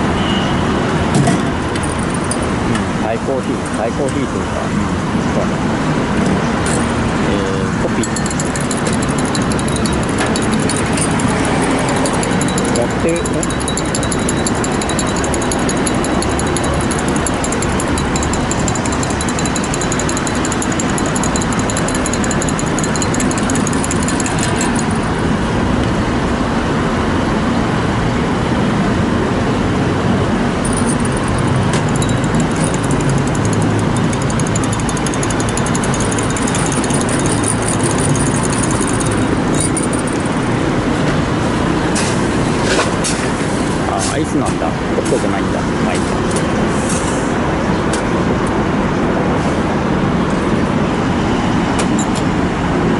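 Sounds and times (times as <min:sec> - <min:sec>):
engines running: 0:01.5 - 0:26.9, 0:29.9 - 0:42.6
voices: 0:07.2 - 0:08.3, 0:10.4 - 0:14.1.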